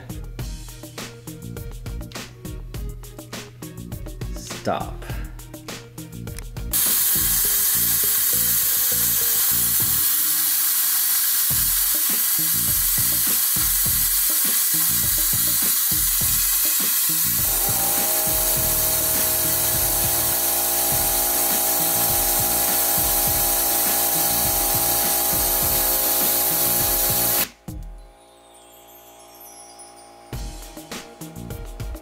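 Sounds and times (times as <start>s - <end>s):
compressed air gun hissing: 6.7s - 27.5s
fidget spinner steady tone: 6.7s - 27.5s.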